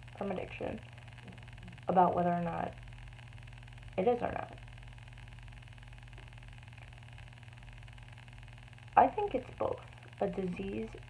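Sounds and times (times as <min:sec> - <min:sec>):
low room tone hum: 0:00.0 - 0:11.0.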